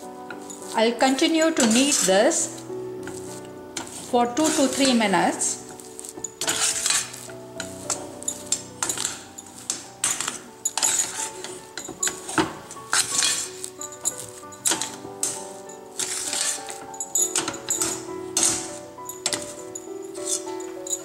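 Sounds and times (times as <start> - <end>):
background music: 0.0 - 21.0
metal spatula scraping steel pan: 0.0 - 21.0.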